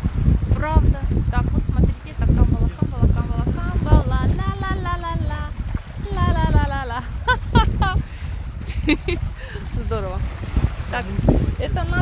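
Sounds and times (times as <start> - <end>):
small waves washing on rocks: 0.0 - 12.0
wind buffeting microphone: 0.0 - 12.0.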